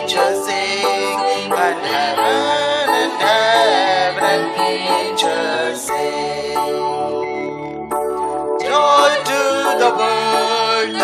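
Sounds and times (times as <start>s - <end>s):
man singing into a microphone: 0.0s - 6.8s, 8.6s - 11.0s
instrumental backing with held notes: 0.0s - 11.0s
women singing: 8.7s - 11.0s.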